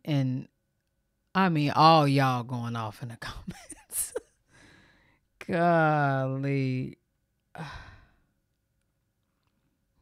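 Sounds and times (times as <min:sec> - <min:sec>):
woman sighing: 0:07.5 - 0:08.3.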